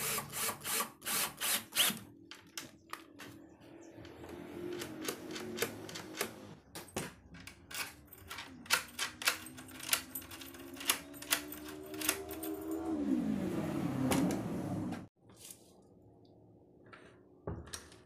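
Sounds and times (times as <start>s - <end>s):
door lock and handle clicking: 7.4s - 12.6s.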